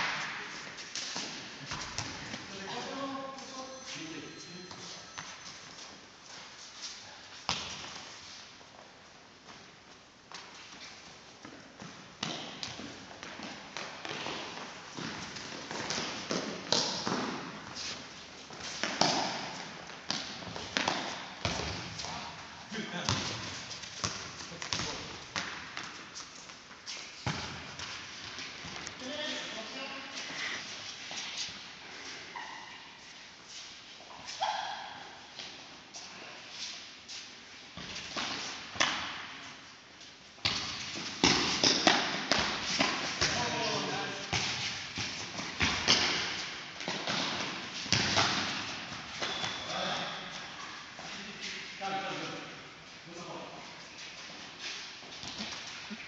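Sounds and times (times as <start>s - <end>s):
ball kicked and bouncing: 27.2s - 27.9s.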